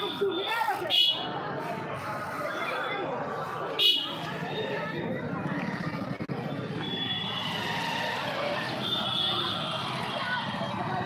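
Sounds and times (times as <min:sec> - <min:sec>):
crowd chatter: 0:00.0 - 0:11.0
motorbikes passing: 0:00.1 - 0:11.0.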